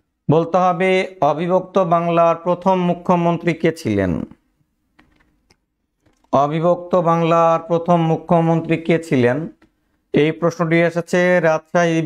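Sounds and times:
man talking: 0.3 - 4.4, 6.3 - 12.0.

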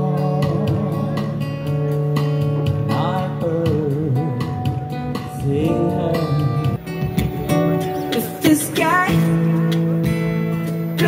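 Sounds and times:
man singing: 0.0 - 6.9
acoustic guitar: 0.0 - 11.0.

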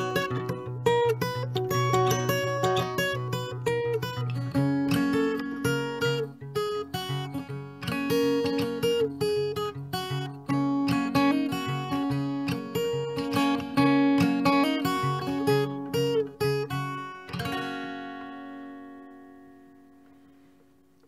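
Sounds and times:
strummed guitar chord ringing: 0.0 - 20.4
acoustic guitar picking: 0.0 - 21.0.

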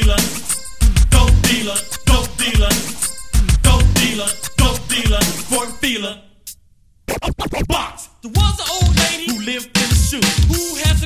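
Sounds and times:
hip-hop drum beat: 0.0 - 5.8, 7.1 - 11.0
turntable scratches: 7.0 - 11.0.

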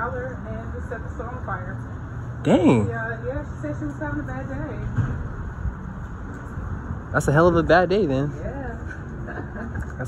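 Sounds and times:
distant traffic rumble: 0.0 - 10.0.

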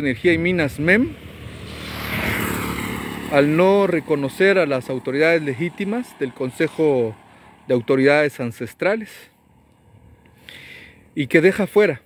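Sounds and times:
small motorcycle engine: 0.4 - 8.6.

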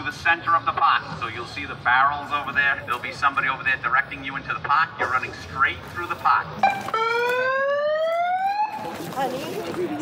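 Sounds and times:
siren rising in pitch: 6.6 - 8.9.

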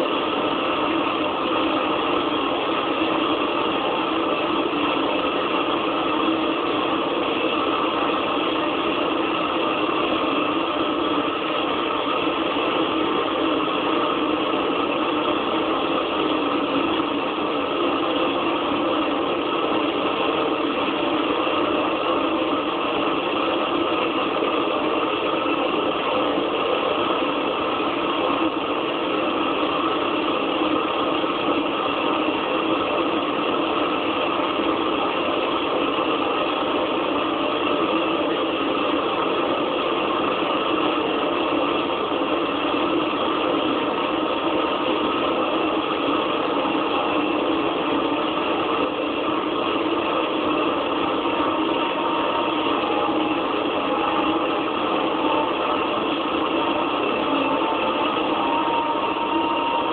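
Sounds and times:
electronic noise drone: 0.0 - 59.9.

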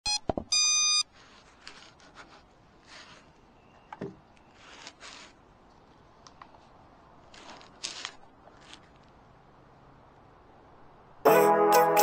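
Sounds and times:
electronic beeps: 0.0 - 1.0
handling rustle: 1.1 - 9.3.

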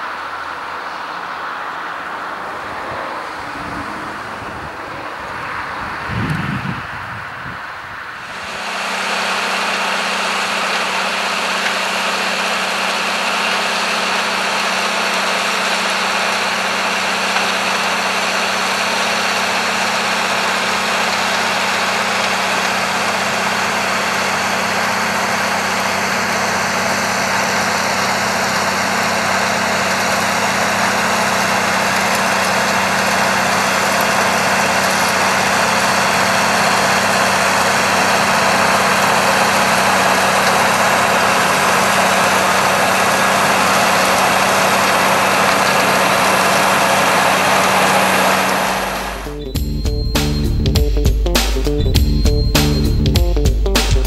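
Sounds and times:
tractor engine running under load: 8.2 - 54.0.

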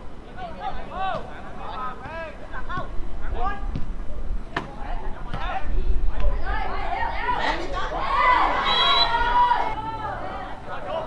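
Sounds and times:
voices shouting: 6.3 - 11.0.

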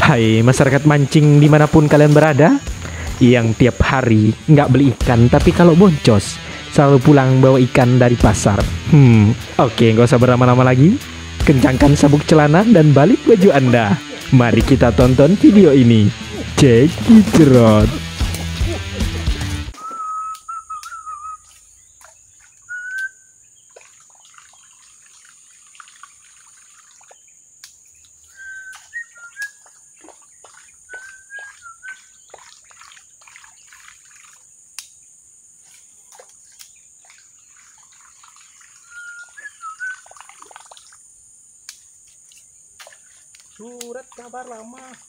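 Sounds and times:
high insect buzz: 0.1 - 45.0
birds whistling calls: 17.7 - 23.7, 28.0 - 32.9, 36.6 - 40.2.

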